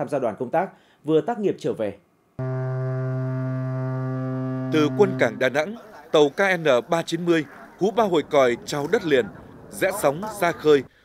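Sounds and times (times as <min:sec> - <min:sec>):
ship's horn low blast: 0:02.4 - 0:05.6.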